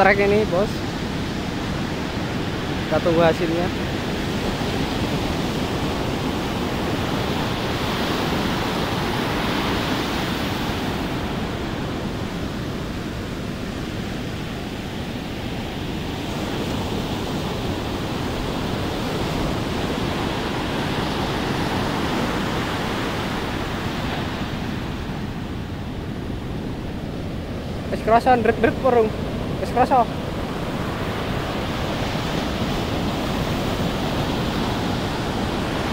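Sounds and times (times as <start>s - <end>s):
ocean surf breaking on beach: 0.0s - 35.9s.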